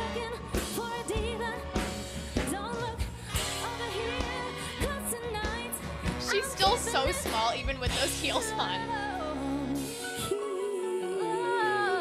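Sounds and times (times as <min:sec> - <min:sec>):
soft backing music: 0:00.0 - 0:12.0.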